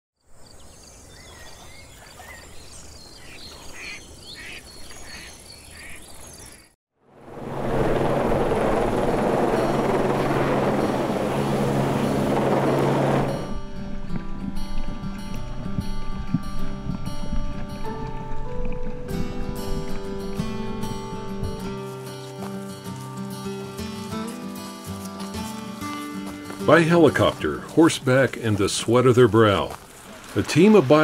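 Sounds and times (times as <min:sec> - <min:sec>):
chirping calls: 0:00.4 - 0:06.7
helicopter hovering: 0:07.1 - 0:13.7
music: 0:09.1 - 0:29.5.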